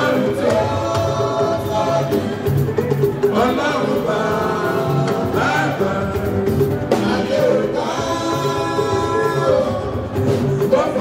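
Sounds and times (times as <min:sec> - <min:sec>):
live band music: 0:00.0 - 0:11.0
voices singing together: 0:00.0 - 0:11.0.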